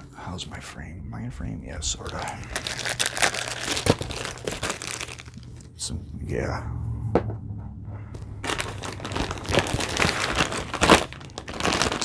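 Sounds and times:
steady low hum: 0.0 - 12.0
plastic bag crinkling: 1.9 - 5.6, 8.2 - 12.0.

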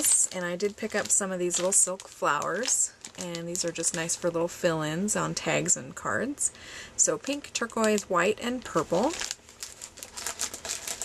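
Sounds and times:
plastic bags crinkling: 0.0 - 5.6, 7.0 - 11.0.

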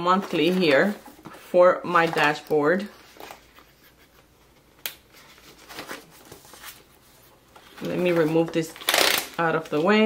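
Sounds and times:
paper pages rustling: 2.0 - 10.0.

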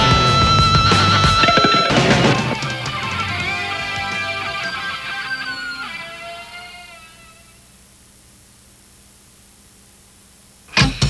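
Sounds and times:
rock music with electric guitar: 0.0 - 7.2
loud abrupt sound: 0.9 - 6.5
low hiss: 1.4 - 11.0.

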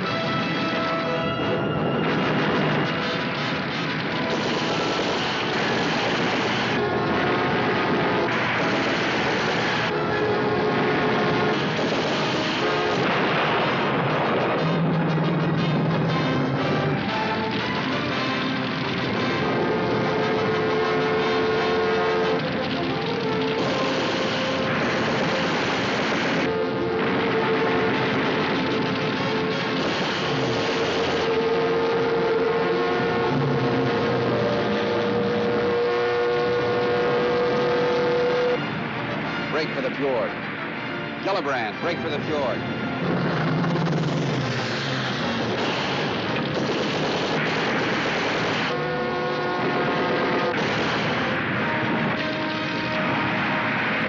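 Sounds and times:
aircraft engines droning: 0.0 - 54.0
dramatic orchestral music: 0.0 - 54.0
anti-aircraft gun firing: 1.9 - 16.1, 17.0 - 31.9, 43.3 - 48.9, 49.9 - 52.9.

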